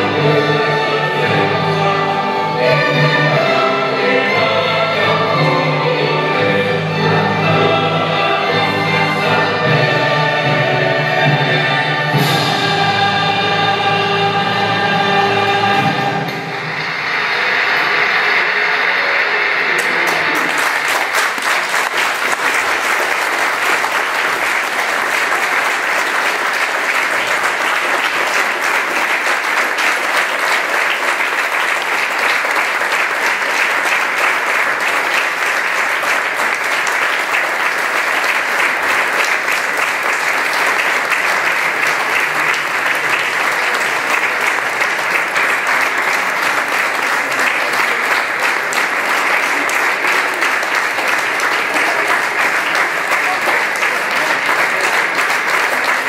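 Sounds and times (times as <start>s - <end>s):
audience applauding: 15.9s - 56.0s.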